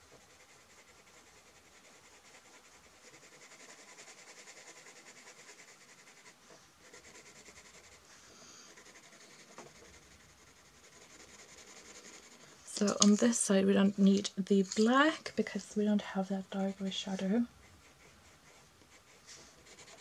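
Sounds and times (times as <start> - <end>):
colored pencil scratching on paper: 0.0 - 20.0.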